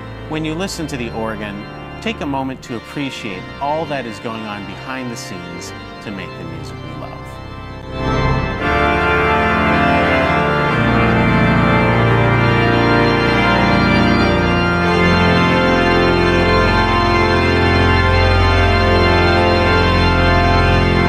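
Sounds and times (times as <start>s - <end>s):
deep organ pedal bass notes: 0.0s - 21.0s
pipe organ chords: 0.0s - 21.0s.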